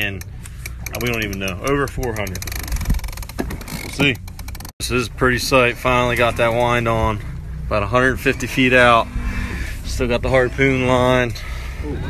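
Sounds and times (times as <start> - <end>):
low rumble and hiss on boat: 5.1 - 12.0.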